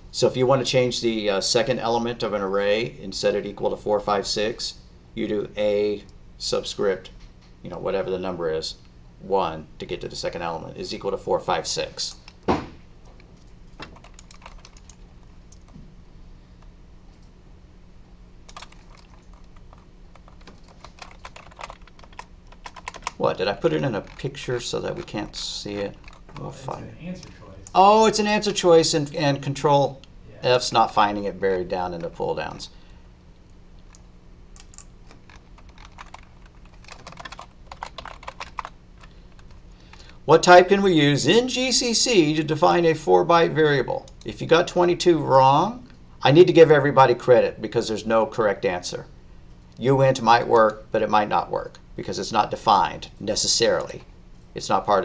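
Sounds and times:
faint low hum: 0.0s - 55.0s
typing on computer keyboard: 13.8s - 15.7s, 18.5s - 26.2s, 34.6s - 40.1s.

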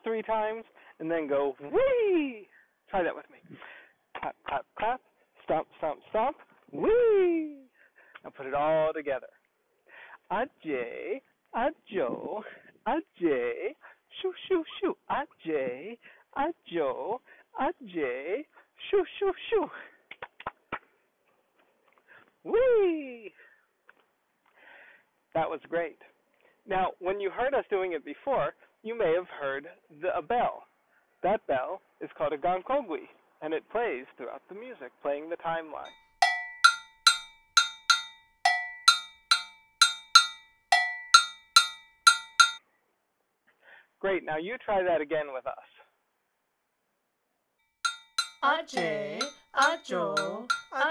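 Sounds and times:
iron double bell struck with stick: 35.9s - 42.6s, 47.9s - 50.9s
hand claps: 47.9s - 50.9s.

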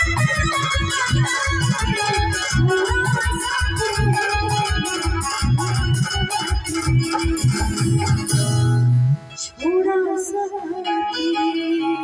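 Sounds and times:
dholak percussion beat: 0.0s - 8.4s
electronic keyboard chords: 0.0s - 9.8s.

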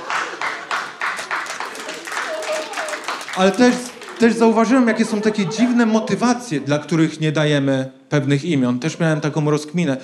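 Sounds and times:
scattered clapping: 0.0s - 4.6s
crowd laughing: 0.0s - 7.0s.

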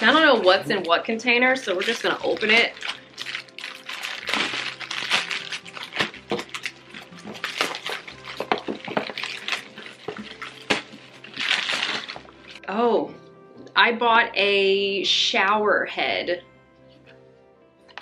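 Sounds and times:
plastic bag crinkling: 0.0s - 12.6s.

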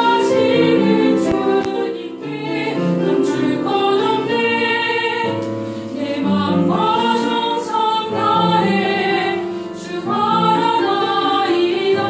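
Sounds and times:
choir singing a worship song: 0.0s - 12.0s.

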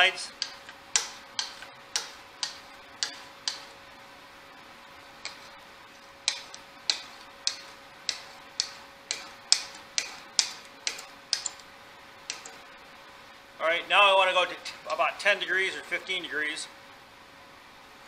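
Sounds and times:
burnisher scraping steel edge: 0.0s - 3.8s, 5.2s - 11.6s.

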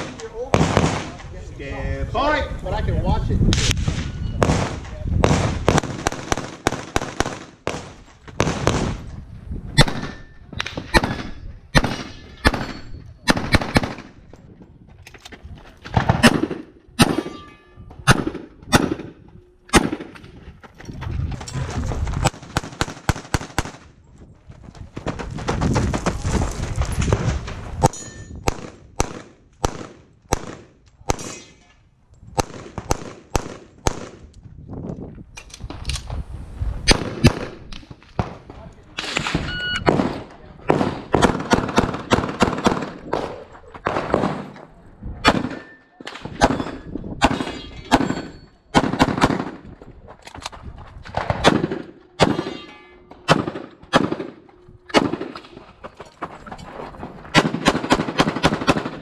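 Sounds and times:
rapid pistol fire: 4.4s - 9.0s, 39.9s - 43.3s, 57.4s - 59.0s
steel target ringing: 17.1s - 17.9s, 52.2s - 53.3s.

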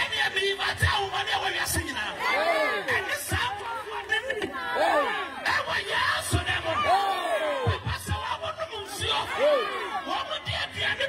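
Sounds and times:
man declaiming through loudspeaker: 0.0s - 4.6s, 5.4s - 11.0s
crowd voices: 0.0s - 11.0s.

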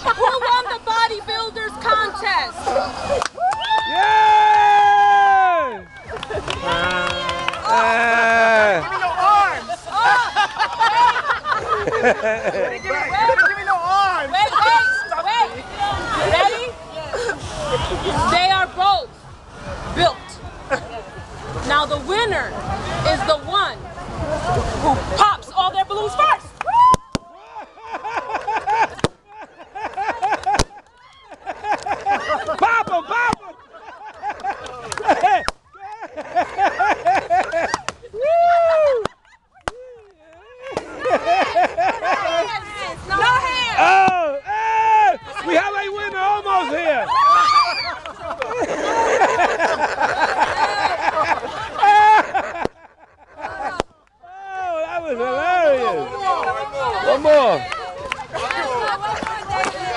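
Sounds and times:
people laughing and shrieking: 0.0s - 18.4s, 26.1s - 59.9s.

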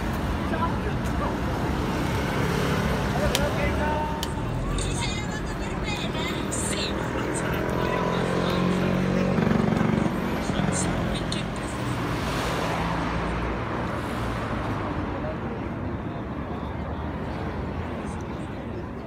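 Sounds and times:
crowd chatter: 0.0s - 19.0s.

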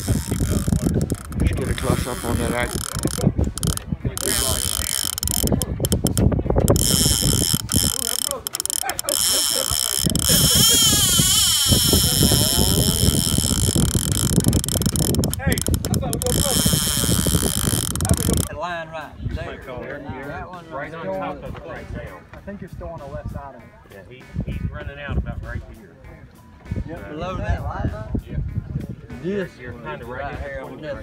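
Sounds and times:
fishing reel ratcheting: 0.0s - 18.5s.

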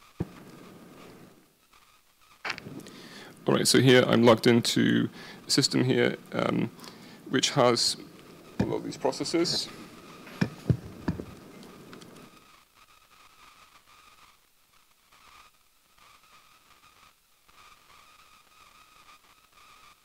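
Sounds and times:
thin high-pitched whine: 0.0s - 14.4s.

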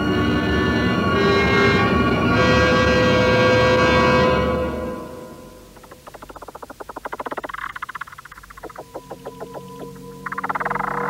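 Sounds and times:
orchestral music: 0.0s - 5.7s.

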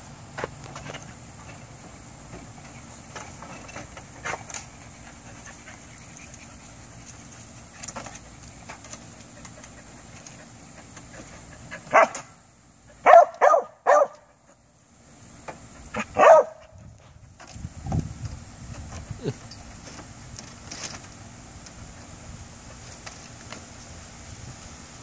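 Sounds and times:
small dog barking: 11.9s - 12.2s, 13.0s - 14.3s, 16.0s - 16.6s.

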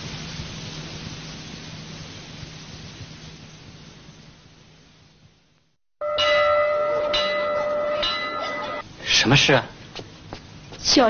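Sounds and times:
bell ringing: 6.0s - 8.9s.

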